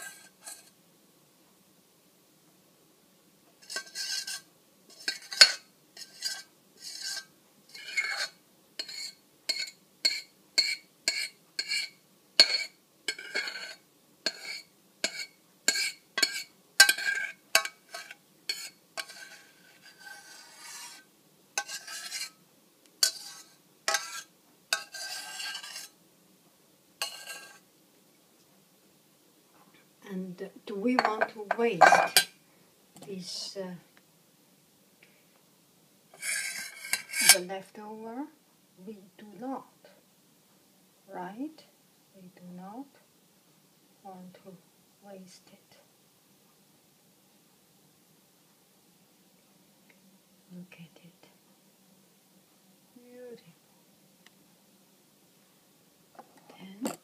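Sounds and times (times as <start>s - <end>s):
utensil scraping metal pot: 0.0s - 0.8s, 3.6s - 22.4s, 23.0s - 26.0s, 27.0s - 27.6s, 30.9s - 32.4s, 36.1s - 37.5s.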